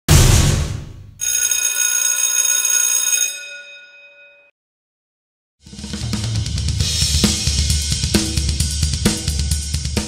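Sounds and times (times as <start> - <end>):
loud hit with deep low end: 0.1 - 1.1
bell-like metallic ring: 1.2 - 4.5.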